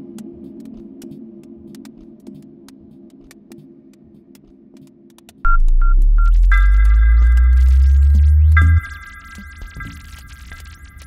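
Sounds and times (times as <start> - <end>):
scattered clicks: 4.3 - 11.0
deep synthesizer bass drone: 5.5 - 11.0
short gliding tones: 5.5 - 11.0
high held synth chord: 6.4 - 11.0.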